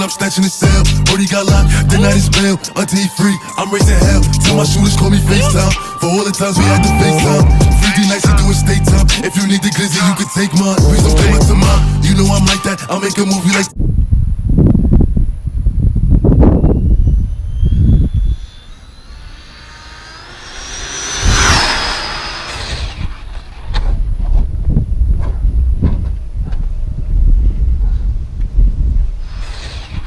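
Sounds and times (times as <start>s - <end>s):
low rumbling noise: 13.8s - 23.7s
electric motor whine: 17.0s - 23.5s.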